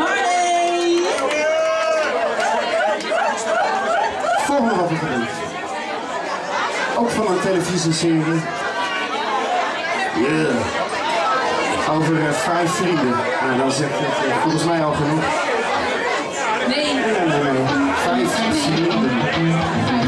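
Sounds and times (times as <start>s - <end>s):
people talking: 0.0s - 6.0s, 10.1s - 10.8s, 16.6s - 20.0s
crowd chatter: 0.0s - 20.0s.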